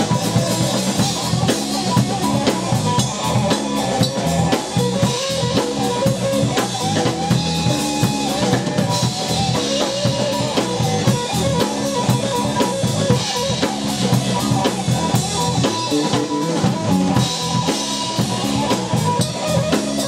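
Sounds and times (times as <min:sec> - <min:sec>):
distorted electric guitar: 0:00.0 - 0:20.0
drum kit steady beat: 0:00.0 - 0:20.0
electric bass: 0:00.0 - 0:20.0.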